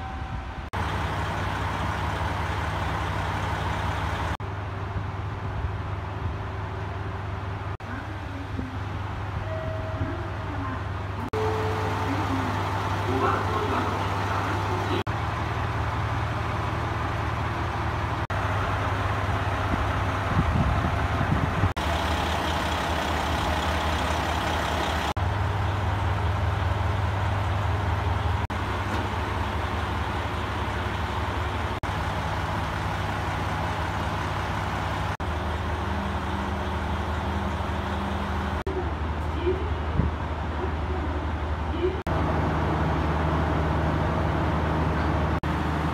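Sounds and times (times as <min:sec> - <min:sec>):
diesel railcar engine idling: 0:00.0 - 0:45.9.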